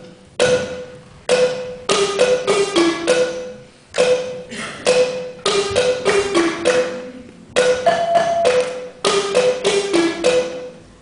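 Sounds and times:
wooden xylophone strokes: 0.0s - 10.8s.

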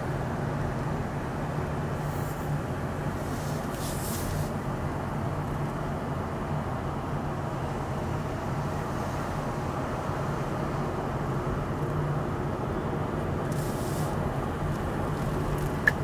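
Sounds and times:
car driving road noise: 0.0s - 16.0s.

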